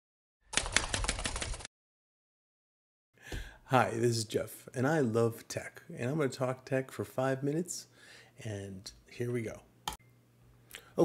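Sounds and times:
rapid clatter of sharp clicks: 0.5 - 1.7.

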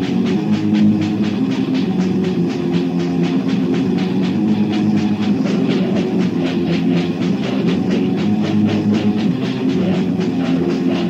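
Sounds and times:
distorted guitar chords: 0.0 - 11.0
fast drumming: 0.0 - 11.0.

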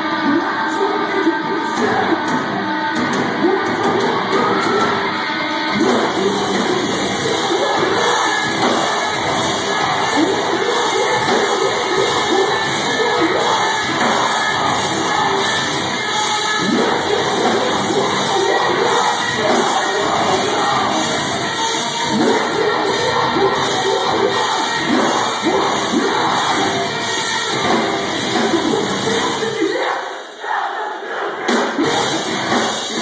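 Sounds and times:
metalcore band playing live: 0.0 - 29.9, 31.4 - 33.0
crowd shouting along: 0.0 - 33.0.

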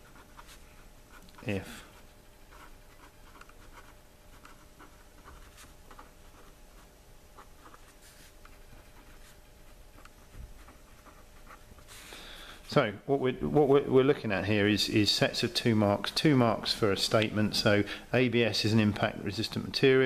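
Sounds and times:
pen writing on paper: 2.5 - 7.9.

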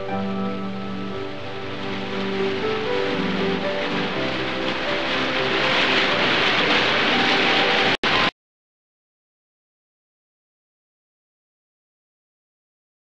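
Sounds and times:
music of slow held notes: 0.0 - 8.3
waterfall rushing: 0.0 - 8.3.

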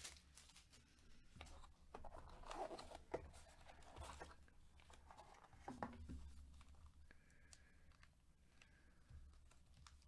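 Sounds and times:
rustling and crinkling of foil: 0.0 - 1.2.

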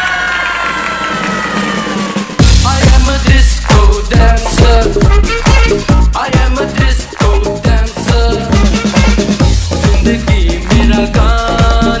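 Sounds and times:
audience cheering: 0.0 - 2.4.

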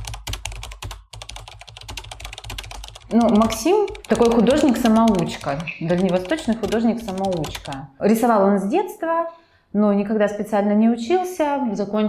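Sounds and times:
rapid typing on keyboard: 0.0 - 7.9.

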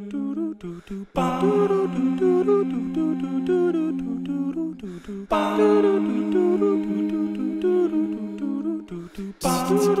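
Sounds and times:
hummed melody: 1.2 - 10.0.

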